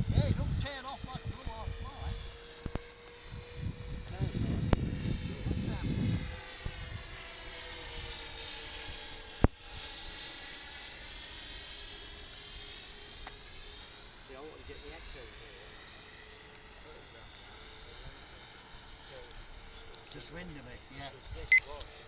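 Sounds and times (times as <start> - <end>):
model aircraft motors whining: 0.0 - 22.0.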